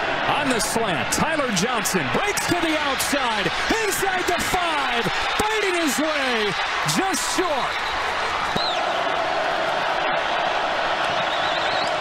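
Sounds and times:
stadium crowd roar: 0.0s - 12.0s.

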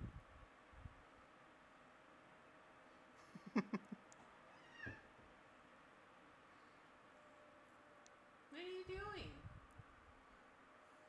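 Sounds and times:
cat meowing: 4.5s - 5.1s.

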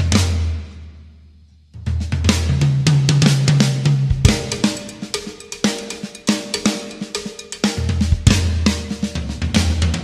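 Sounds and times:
drum kit played with sticks: 0.0s - 10.0s.

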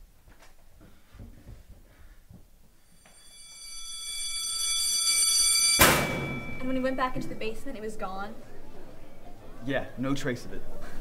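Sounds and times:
electric bell ringing: 2.8s - 8.0s
metal door slamming: 5.8s - 6.6s.

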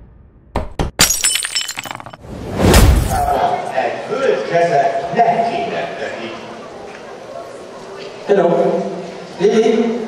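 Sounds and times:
glass shattering: 1.0s - 3.3s.

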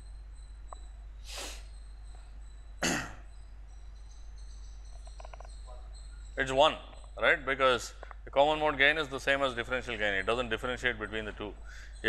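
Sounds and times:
faint high-pitched whine: 0.0s - 12.0s
person coughing: 2.8s - 3.2s.

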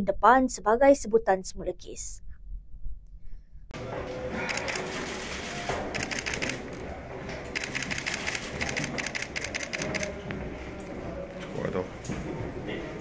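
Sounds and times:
camera shutters clicking: 4.5s - 4.9s, 5.9s - 6.8s, 7.5s - 10.1s.

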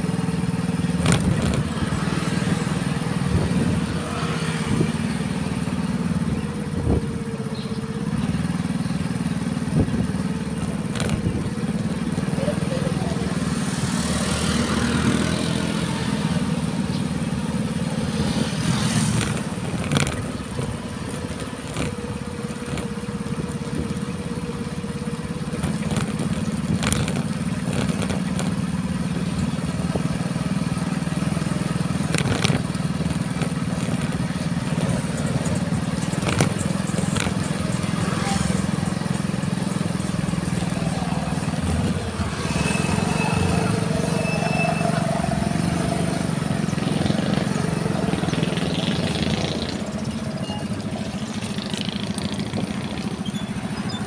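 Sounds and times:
small motorcycle engine running: 0.0s - 54.0s.

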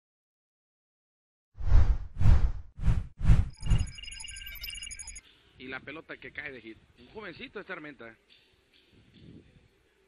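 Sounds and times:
high bell-like chiming: 3.6s - 5.2s.

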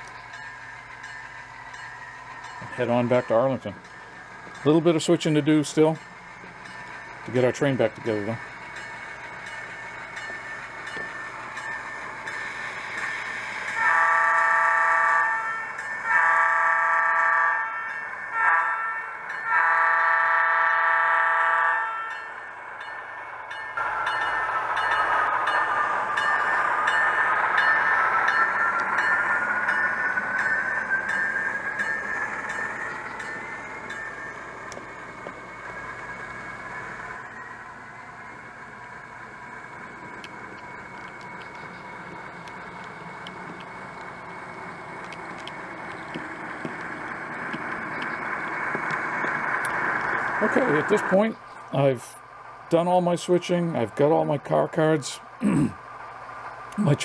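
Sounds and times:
locomotive engine whine: 0.0s - 57.0s
model locomotive horn blasts: 13.7s - 22.3s.

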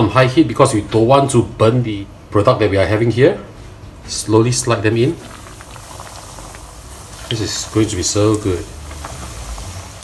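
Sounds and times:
food deep-frying in oil: 4.5s - 10.0s
oil crackling: 4.5s - 10.0s.

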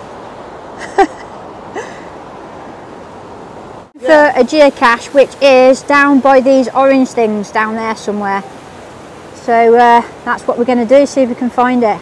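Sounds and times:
water rushing over weir: 0.0s - 12.0s.

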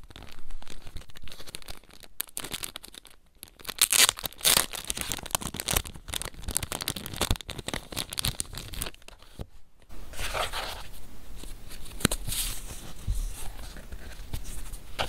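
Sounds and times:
plastic packet crinkling: 0.0s - 9.4s.

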